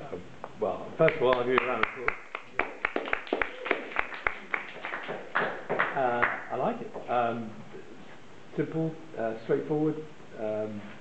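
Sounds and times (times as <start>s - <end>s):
small audience clapping: 1.0s - 7.1s.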